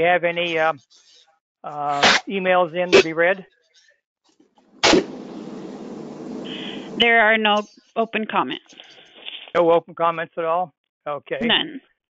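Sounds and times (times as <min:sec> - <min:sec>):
open line hiss: 0:04.8 - 0:07.2.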